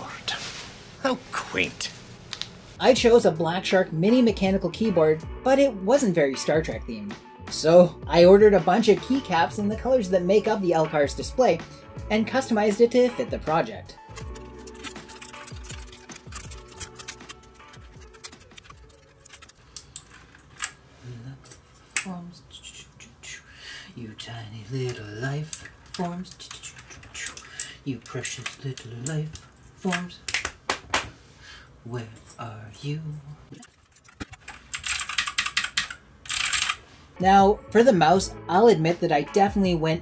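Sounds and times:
background music with bass: 2.9 - 19.0.

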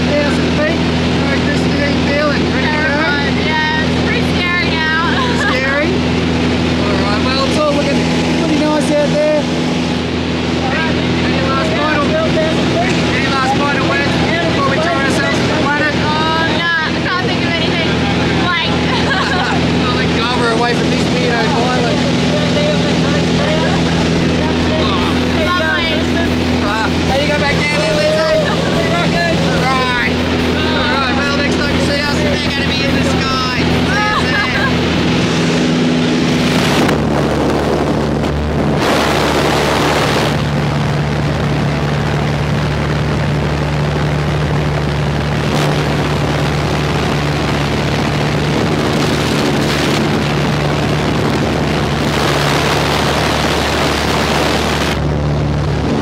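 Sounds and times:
people talking: 0.0 - 9.5, 10.4 - 36.8.

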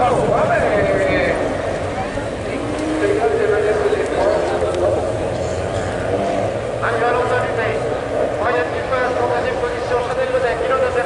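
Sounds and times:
distant car engines running: 0.0 - 11.0.

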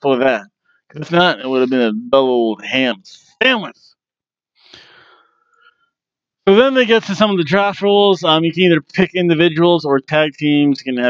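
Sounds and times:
man breathing or sighing: 4.7 - 5.3.

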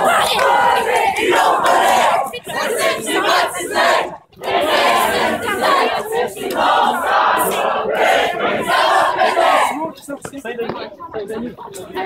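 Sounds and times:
crowd shouting together: 0.0 - 9.8.

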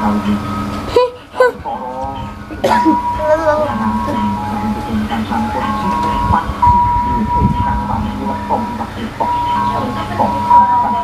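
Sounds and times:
melody of long held notes: 0.0 - 11.0
low rumble: 1.6 - 11.0.

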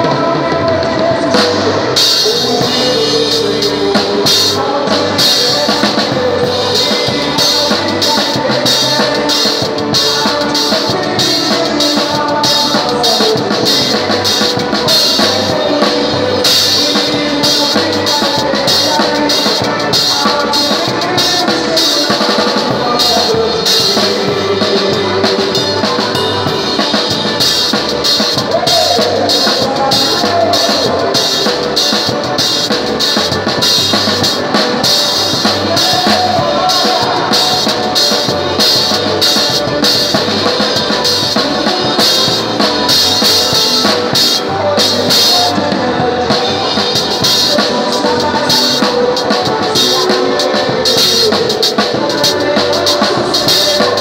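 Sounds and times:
band melody instruments: 0.0 - 54.0
drum kit fast beat: 0.0 - 54.0.

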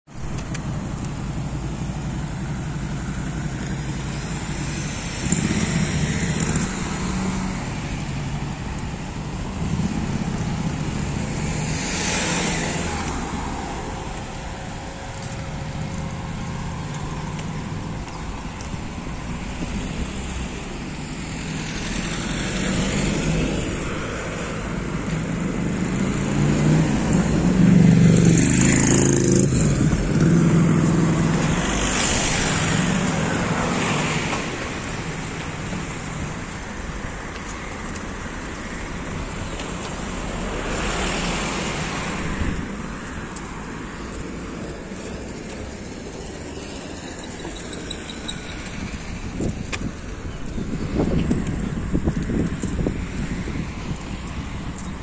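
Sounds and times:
low traffic rumble: 0.1 - 55.0
cars driving past: 0.2 - 55.0.

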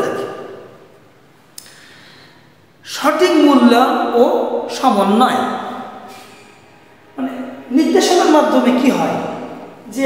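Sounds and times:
man breathing in: 1.6 - 2.6.

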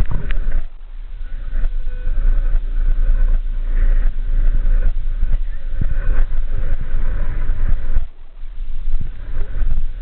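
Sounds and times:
vehicle engine and road noise: 0.0 - 10.0.

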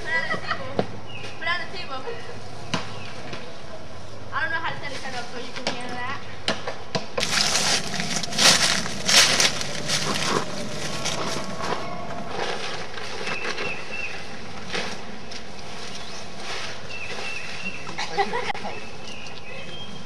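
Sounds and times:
tent fabric rustling: 7.2 - 13.9.

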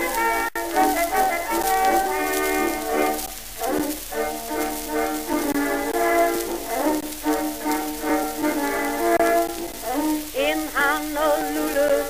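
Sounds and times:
record surface hiss: 0.0 - 12.0.

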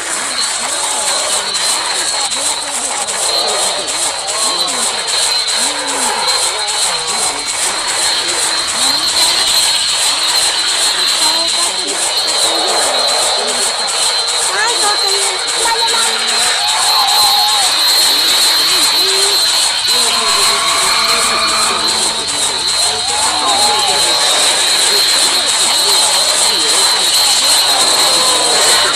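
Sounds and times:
distorted cartoon soundtrack: 0.0 - 28.9
harsh hiss: 0.0 - 28.9
steady high whine: 0.0 - 28.9
warbling pitch-bent voices: 0.0 - 28.9.

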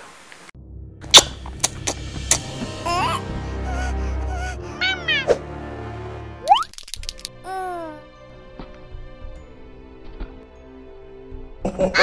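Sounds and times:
background music: 0.6 - 12.0
high falling cartoon cry: 2.9 - 5.4.

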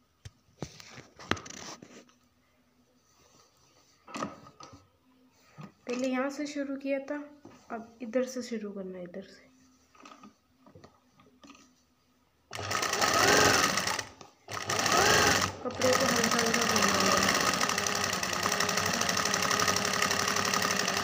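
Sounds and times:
sewing machine stitching: 12.5 - 21.0.

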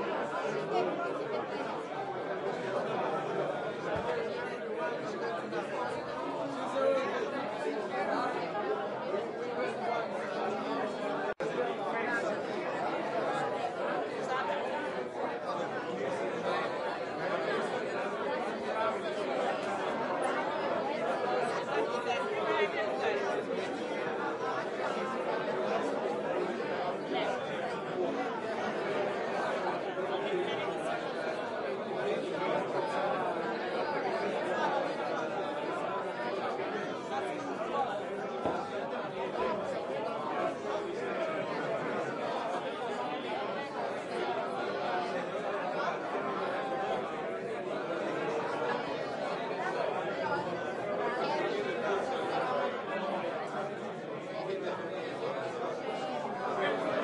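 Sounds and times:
crowd chatter: 0.0 - 57.0.

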